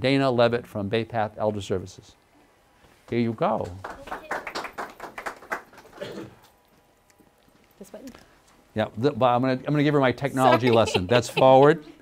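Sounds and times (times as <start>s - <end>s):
small audience clapping: 3.1s - 6.6s.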